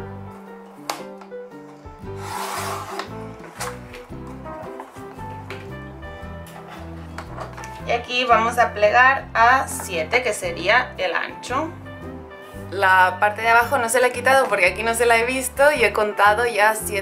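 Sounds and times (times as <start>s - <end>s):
background music: 0.0s - 17.0s
paper trimmer blade cutting paper: 2.2s - 3.8s.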